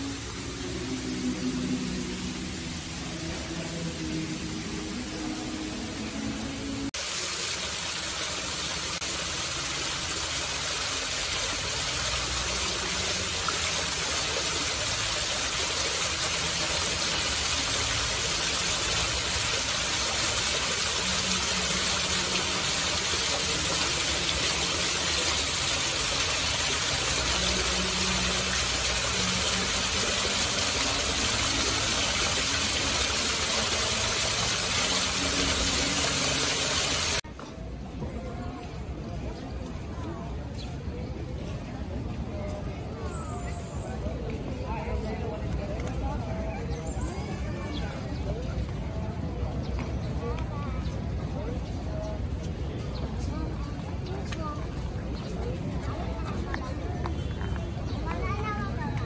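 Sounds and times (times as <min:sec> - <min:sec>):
water splashing over stones: 0:06.9 - 0:37.2.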